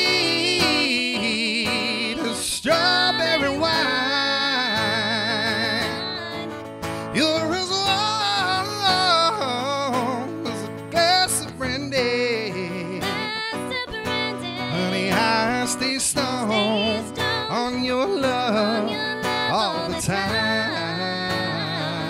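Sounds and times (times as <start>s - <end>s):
man singing country ballad: 0.0s - 22.0s
strummed acoustic guitar: 0.0s - 22.0s.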